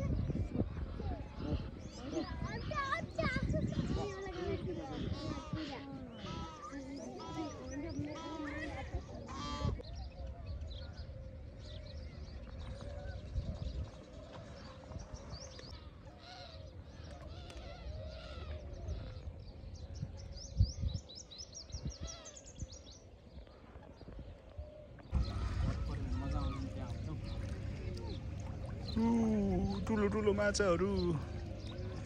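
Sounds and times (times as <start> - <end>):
birds chirping and calling: 0.0 - 32.0
low rumble: 25.1 - 32.0.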